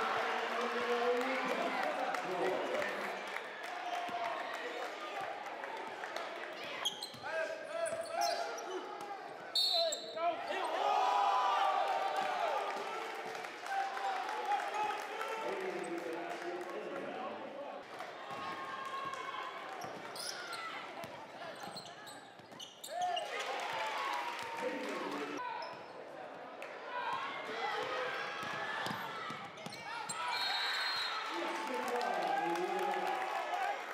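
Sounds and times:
referee's whistle blast: 0:09.6 - 0:10.2, 0:30.2 - 0:31.2.

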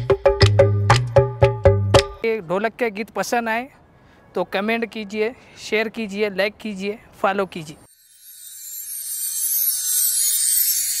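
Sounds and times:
high hissing noise: 0:07.9 - 0:11.0.

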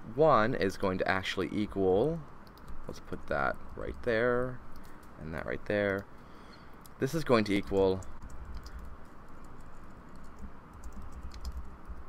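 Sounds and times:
low steady hum: 0:00.0 - 0:12.0
keyboard typing clicks: 0:07.6 - 0:12.0.

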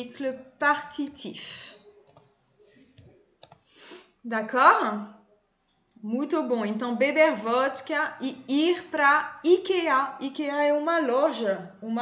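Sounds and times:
computer keyboard keystrokes: 0:02.0 - 0:02.4, 0:03.0 - 0:03.7.

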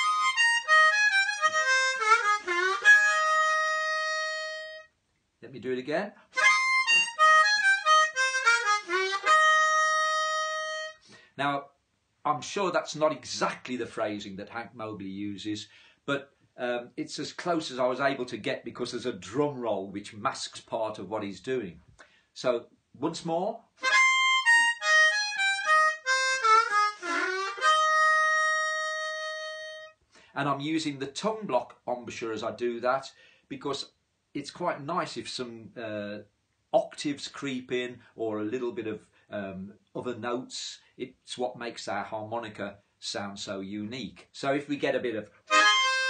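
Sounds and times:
blues harmonica solo: 0:00.0 - 0:05.0, 0:06.3 - 0:11.3, 0:23.8 - 0:30.3, 0:45.4 - 0:46.0.

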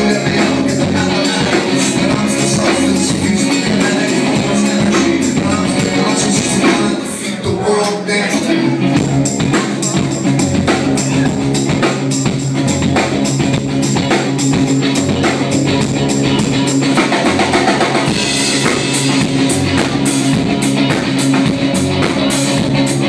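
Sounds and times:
upright double bass: 0:00.0 - 0:07.7, 0:08.4 - 0:23.0
drum kit beat: 0:00.0 - 0:23.0
electric guitar: 0:00.0 - 0:23.0.

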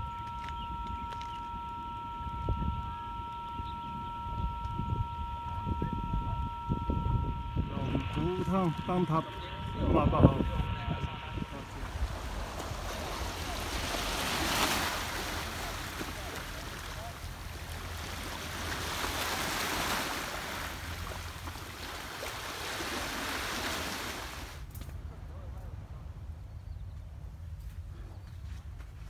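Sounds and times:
wind rumbling on microphone: 0:00.0 - 0:29.0
small waves washing on beach: 0:11.7 - 0:24.7.

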